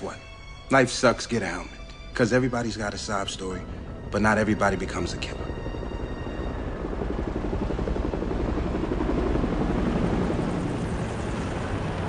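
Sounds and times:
helicopter rotor beating: 0.2s - 12.0s.

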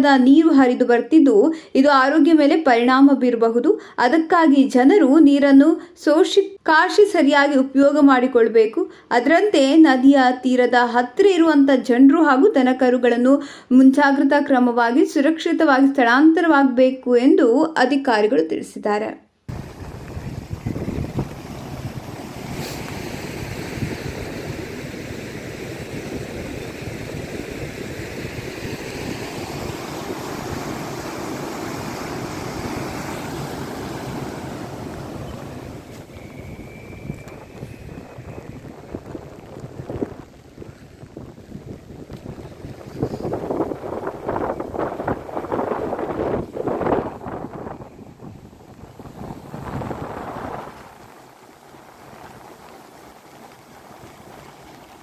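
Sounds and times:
river rushing: 19.5s - 55.0s
wind buffeting microphone: 19.5s - 55.0s.

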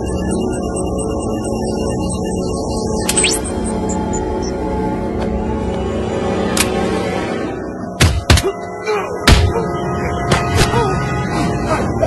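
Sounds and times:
film background score: 0.0s - 12.0s.

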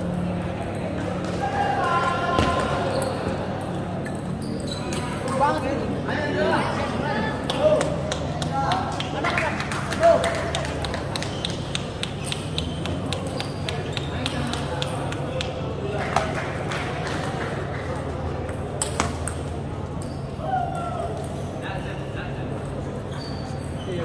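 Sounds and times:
table tennis balls clicking: 10.6s - 15.6s.

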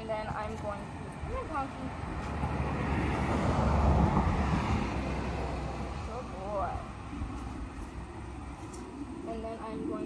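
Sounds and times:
pickup truck passing: 2.0s - 7.3s.

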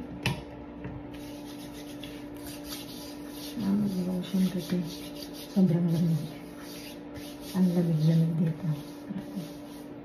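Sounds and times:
steady low hum: 0.0s - 10.0s
hands rubbing bare skin: 1.2s - 10.0s.

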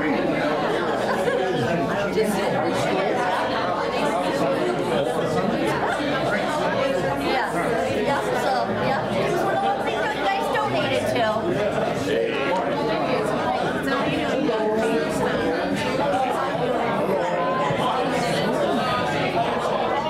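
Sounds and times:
hubbub of overlapping conversations: 0.0s - 20.0s.

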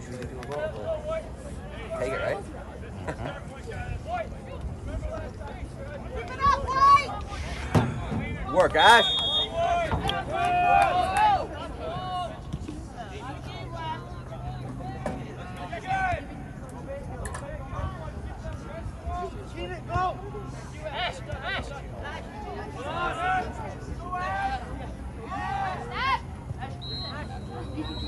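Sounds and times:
murmur of chatter: 0.0s - 28.0s
people shouting and calling: 8.4s - 12.4s, 19.1s - 28.0s.

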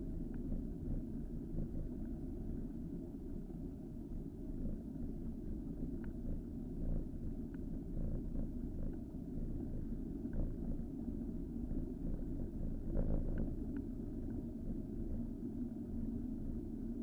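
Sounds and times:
faint ticks: 0.1s - 2.2s, 4.7s - 11.0s, 11.7s - 15.2s.

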